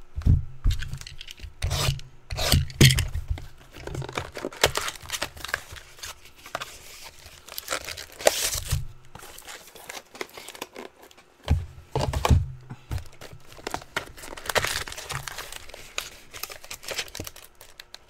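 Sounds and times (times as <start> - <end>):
plastic wrapping tearing and crinkling: 2.4 - 11.4, 13.0 - 18.0.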